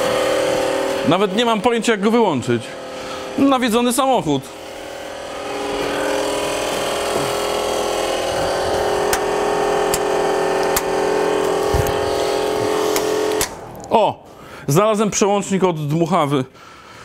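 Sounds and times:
blower fan motor humming: 0:00.0 - 0:14.8.

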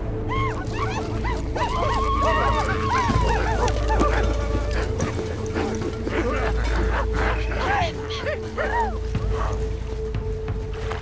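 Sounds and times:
voices hooting and yipping: 0:00.2 - 0:09.8.

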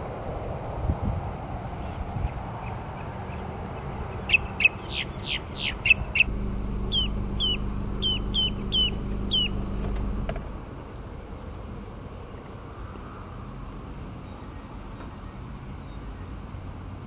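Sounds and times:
grackle calling: 0:04.3 - 0:10.3
low steady hum: 0:06.0 - 0:11.2.

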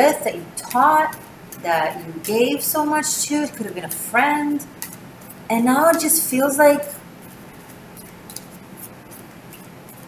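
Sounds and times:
cards being shuffled: 0:07.2 - 0:10.0.

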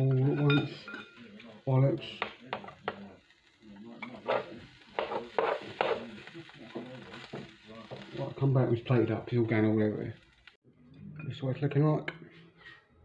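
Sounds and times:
utensil scraping hot plates: 0:00.0 - 0:10.5.

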